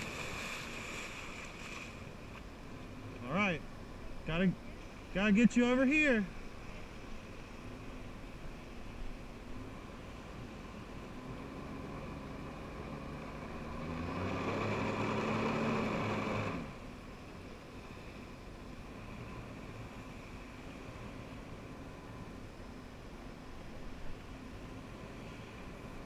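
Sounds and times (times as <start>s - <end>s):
personal watercraft engine revving: 0.0s - 3.4s, 4.8s - 23.3s, 24.2s - 26.0s.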